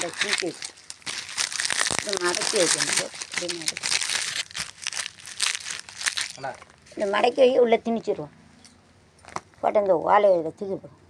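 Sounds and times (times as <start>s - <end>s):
person speaking: 0.0s - 0.8s, 1.9s - 4.0s, 6.3s - 8.3s
crackling handling rustle: 0.0s - 7.5s.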